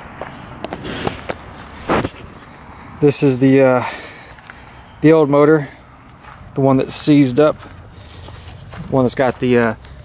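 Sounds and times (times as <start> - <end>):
footsteps on gravel and leaves: 6.0 - 10.0.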